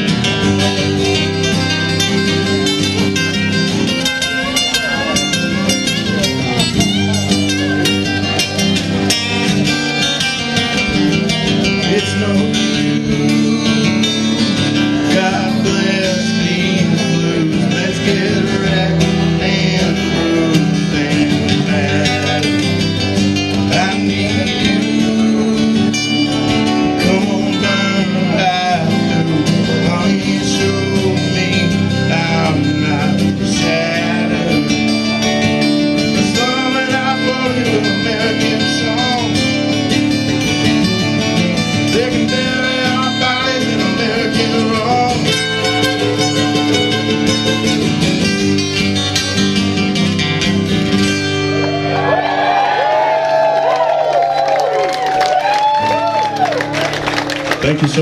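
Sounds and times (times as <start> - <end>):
acoustic guitars playing: 0.0 - 58.0
person singing: 11.6 - 35.3, 36.1 - 40.0.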